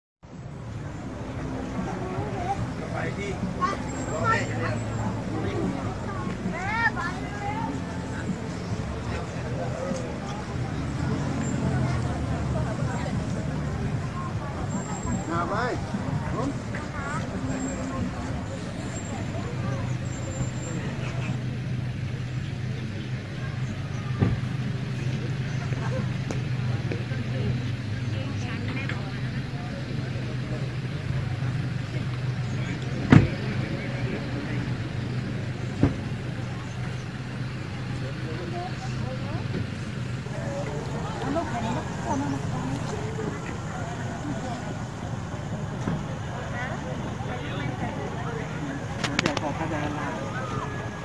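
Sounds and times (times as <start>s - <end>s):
vehicle engine idling: 0.2s - 51.0s
voices: 0.3s - 51.0s.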